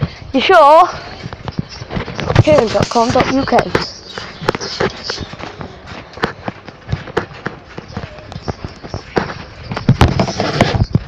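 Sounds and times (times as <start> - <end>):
trampoline bouncing thumps: 0.0 - 11.0.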